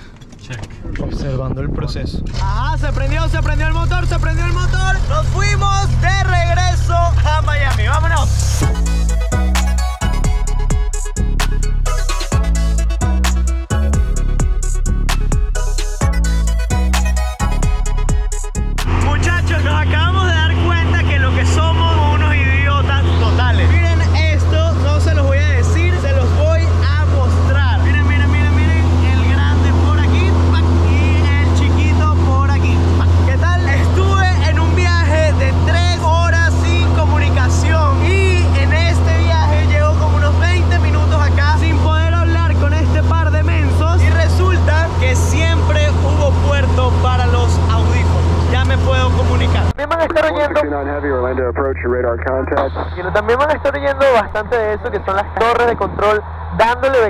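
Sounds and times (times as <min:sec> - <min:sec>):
man talking: 0:00.4 - 0:08.8, 0:18.9 - 0:57.0
airplane engine and propeller drone: 0:02.2 - 0:09.8, 0:17.6 - 0:57.0.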